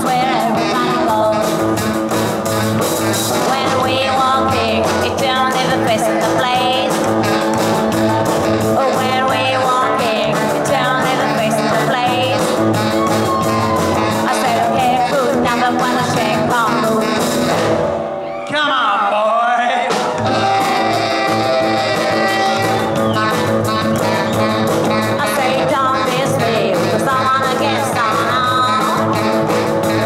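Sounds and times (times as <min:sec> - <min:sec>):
woman singing: 0:00.0 - 0:01.7, 0:03.4 - 0:07.1, 0:08.7 - 0:17.6, 0:25.1 - 0:30.0
walking bass line: 0:00.0 - 0:18.0, 0:20.0 - 0:30.0
garage rock band playing: 0:00.0 - 0:18.4, 0:19.8 - 0:30.0.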